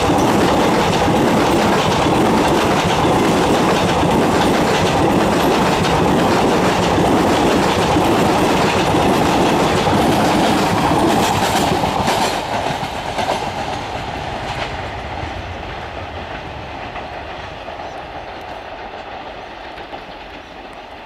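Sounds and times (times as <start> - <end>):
train wheels clattering over rail joints: 0.0 - 14.8.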